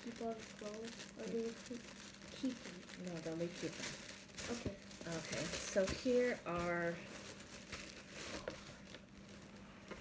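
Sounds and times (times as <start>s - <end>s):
faint steady hum: 0.0s - 10.0s
plastic packaging crinkling: 0.0s - 10.0s.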